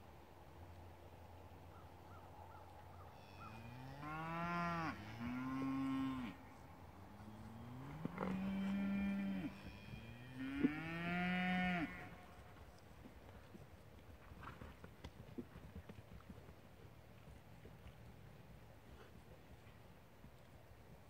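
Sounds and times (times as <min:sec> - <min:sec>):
cattle mooing: 0:03.3 - 0:06.4, 0:07.4 - 0:12.2.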